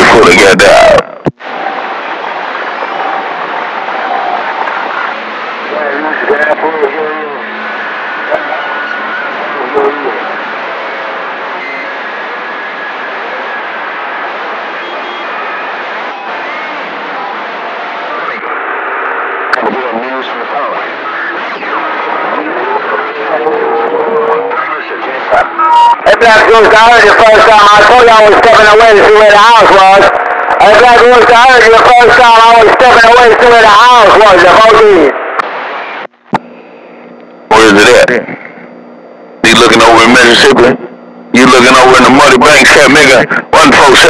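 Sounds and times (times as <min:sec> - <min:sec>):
faint garbled radio voices: 0:00.0 - 0:44.0
radio static hiss: 0:00.0 - 0:44.0.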